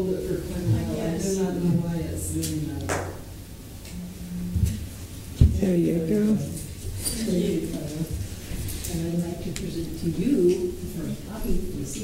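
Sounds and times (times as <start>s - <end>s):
person talking: 0.0s - 2.9s.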